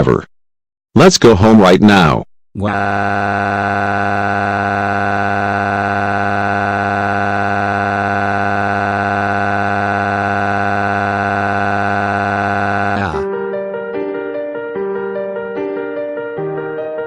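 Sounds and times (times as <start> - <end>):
steady buzzing tone: 2.6 - 13.2.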